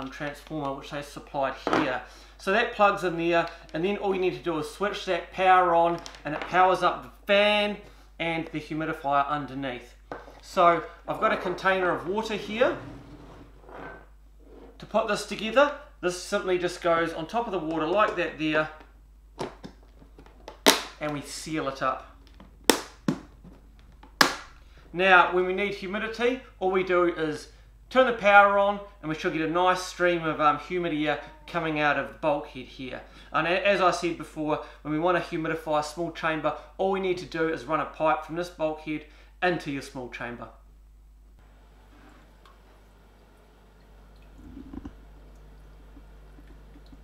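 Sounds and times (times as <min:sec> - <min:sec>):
humidifier fan hum: 0:06.8 - 0:13.8, 0:20.6 - 0:38.3, 0:41.4 - 0:47.0
faint liquid sounds: 0:41.7 - 0:47.0.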